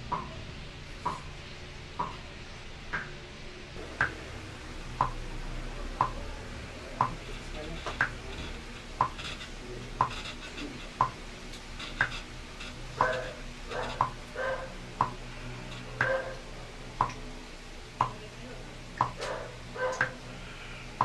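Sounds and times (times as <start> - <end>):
clock ticking: 2.0 - 2.3, 3.8 - 4.3, 4.9 - 5.2, 6.0 - 6.3, 7.0 - 8.2, 11.0 - 11.2, 13.0 - 14.2, 15.0 - 15.2, 17.0 - 17.2, 18.0 - 18.2, 19.0 - 19.2.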